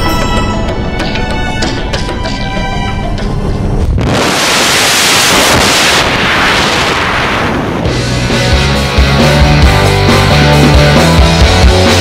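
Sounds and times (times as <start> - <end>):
wind rushing over microphone: 4.0 - 8.0.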